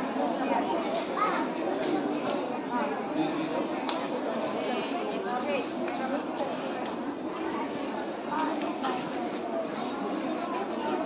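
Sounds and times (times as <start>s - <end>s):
children talking and calling out: 0.0s - 5.3s, 6.1s - 11.0s.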